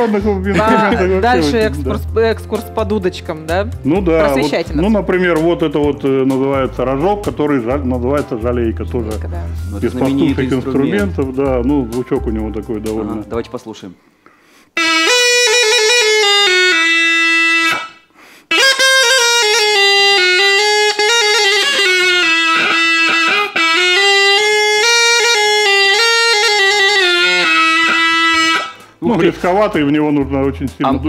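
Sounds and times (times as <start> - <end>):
reed hornpipe folk melody: 0.0 - 2.4, 9.1 - 13.0, 14.7 - 29.3.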